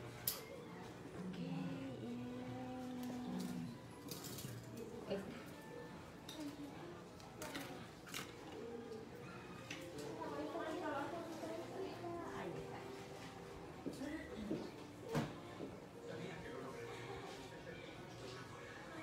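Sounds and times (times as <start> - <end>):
faint background music: 0.0 - 19.0
faint background voices: 0.0 - 19.0.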